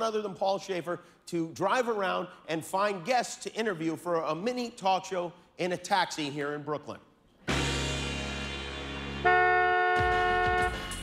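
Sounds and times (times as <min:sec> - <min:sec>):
music with steady drum beat: 0:07.5 - 0:09.2, 0:10.0 - 0:11.0
car horn long honk: 0:09.2 - 0:11.0.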